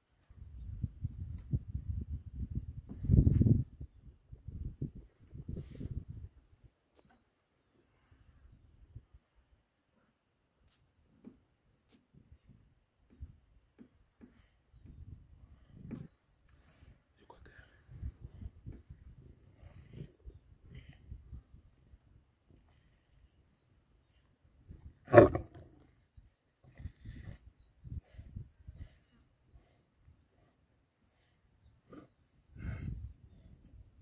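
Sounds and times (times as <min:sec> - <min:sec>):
lioness growling: 0:24.9 - 0:26.0.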